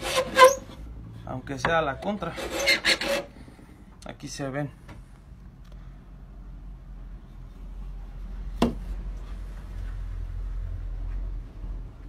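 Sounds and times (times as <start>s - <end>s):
wood knock on workbench: 8.6s - 8.8s.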